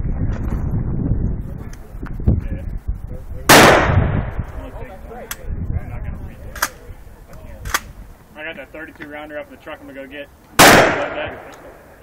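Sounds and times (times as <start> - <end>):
handgun shot: 10.6 - 11.7.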